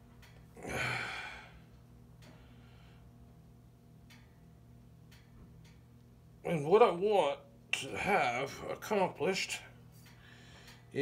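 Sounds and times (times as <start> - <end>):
steady low hum: 0.0 - 11.0
man straining breath out: 0.6 - 1.7.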